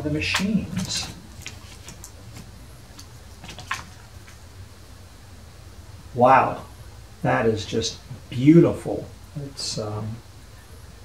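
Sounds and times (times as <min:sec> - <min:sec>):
cardboard packaging rustling: 0:00.2 - 0:04.4.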